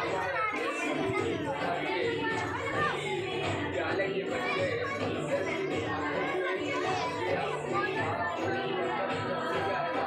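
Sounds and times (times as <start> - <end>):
children chattering: 0.0 - 10.0
dance song: 0.0 - 10.0.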